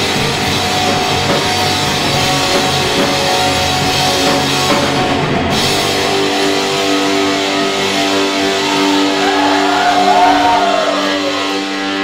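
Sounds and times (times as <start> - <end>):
distorted electric guitars: 0.0 - 12.0
wailing tone: 7.8 - 12.0.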